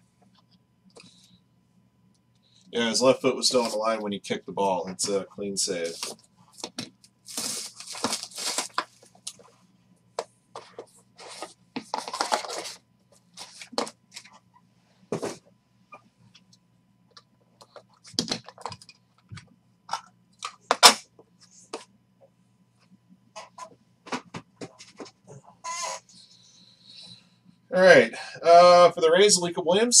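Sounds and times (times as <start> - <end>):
plastic wrap tearing: 7.3 - 8.9.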